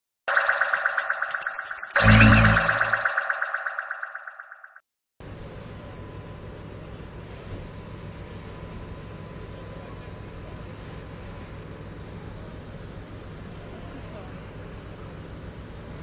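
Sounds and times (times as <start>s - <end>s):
bright pulsing electronic tone: 0.3s - 4.8s.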